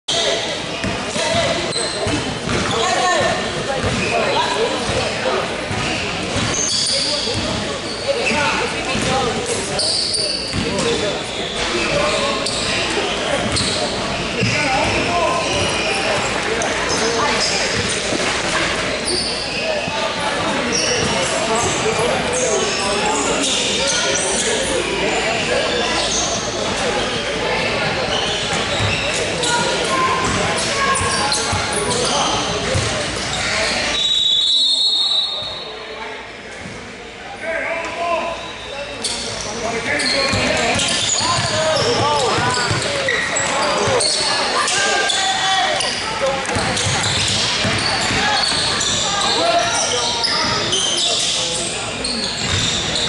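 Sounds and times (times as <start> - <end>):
voices in a gymnasium: 0.0 - 53.0
basketball bouncing on hardwood: 2.4 - 2.7.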